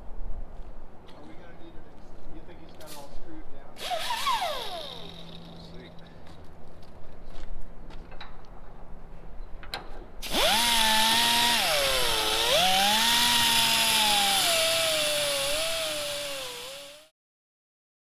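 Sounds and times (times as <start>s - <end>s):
air cut-off tool cutting metal: 3.8s - 5.5s, 10.2s - 17.1s.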